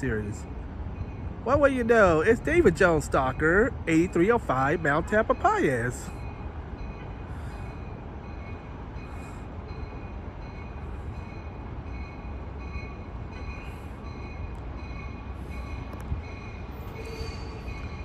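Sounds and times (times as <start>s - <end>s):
train rumbling: 0.0s - 18.0s.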